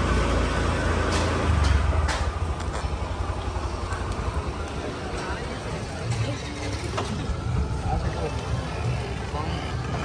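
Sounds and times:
steady low street rumble: 0.0s - 10.0s
indistinct voices: 2.4s - 10.0s.

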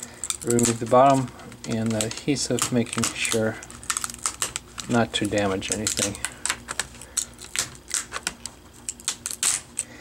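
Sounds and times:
plastic clips clicking and snapping: 0.2s - 9.9s.

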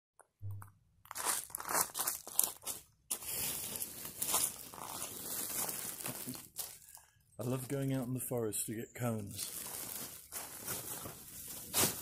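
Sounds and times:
dry crunching: 1.0s - 7.8s, 9.3s - 12.0s.

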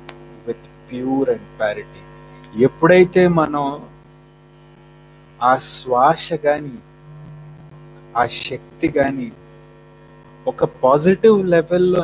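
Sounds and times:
electrical mains hum: 0.0s - 12.0s
man speaking: 0.5s - 2.0s, 2.6s - 3.9s, 5.4s - 6.8s, 8.2s - 9.4s, 10.5s - 12.0s.

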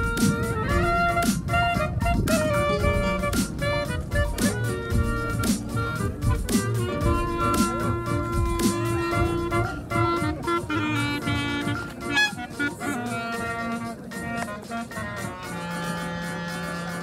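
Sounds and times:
clarinet melody: 0.0s - 17.0s
electronic backing beat: 0.0s - 17.0s.

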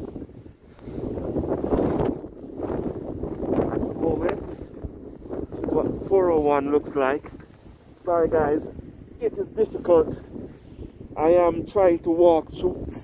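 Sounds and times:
wind buffeting microphone: 0.0s - 13.0s.

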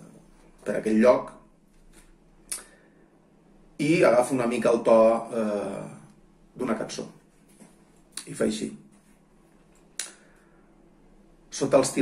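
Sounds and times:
sharp mouth click: 2.5s - 2.8s, 10.0s - 10.2s.

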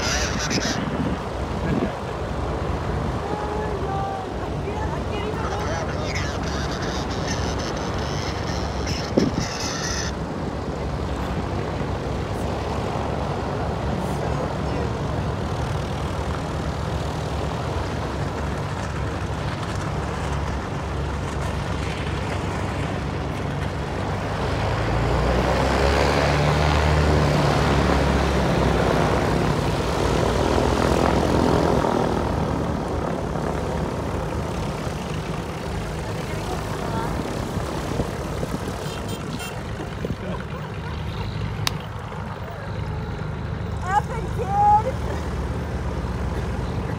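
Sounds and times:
propeller airplanes taxiing: 0.0s - 46.9s.

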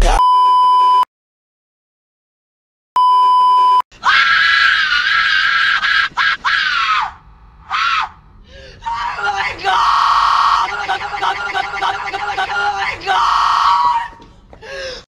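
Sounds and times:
high beeps: 3.0s - 3.8s
person screaming: 4.0s - 14.2s
person crying out: 8.8s - 14.2s.

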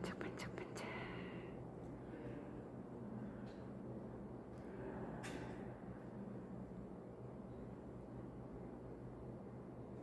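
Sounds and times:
person whispering: 0.0s - 1.6s
low ventilation hum: 0.0s - 10.0s.

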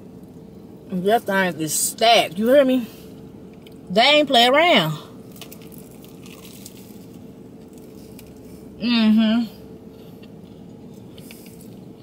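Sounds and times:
steady hum: 0.0s - 12.0s
chewing crunchy food: 5.2s - 8.8s, 9.8s - 12.0s.

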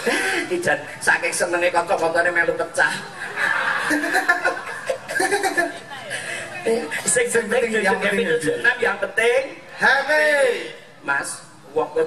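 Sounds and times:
people laughing: 0.0s - 0.6s, 2.9s - 7.1s.

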